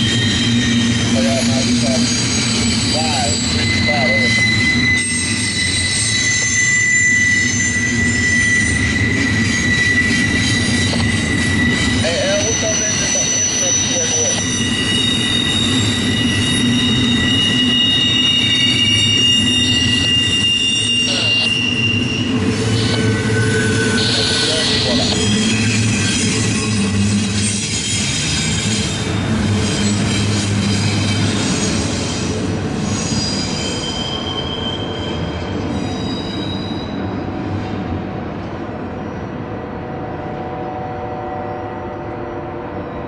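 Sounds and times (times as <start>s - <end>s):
high-pitched wheel squeals: 0.0s - 37.8s
freight train wheels rumbling: 0.0s - 43.0s.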